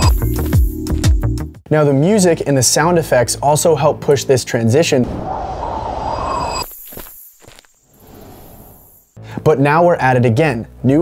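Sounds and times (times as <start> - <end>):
whoosh: 5.0 - 9.1
footsteps: 6.6 - 7.8.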